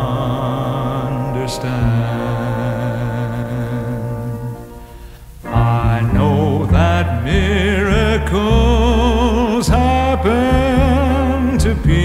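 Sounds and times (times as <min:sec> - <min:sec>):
orchestral sustained chord: 0:00.0 - 0:08.5.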